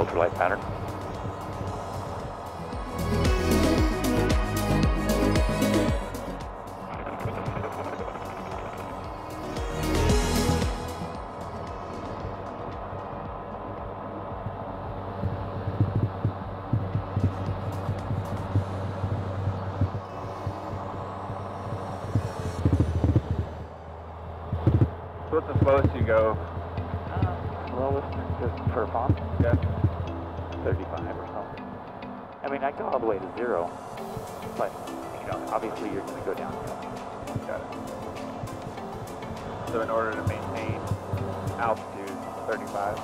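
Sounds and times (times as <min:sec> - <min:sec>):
aircraft engine and propeller drone: 0:00.0 - 0:43.0
background music: 0:00.0 - 0:43.0
person speaking: 0:39.7 - 0:43.0.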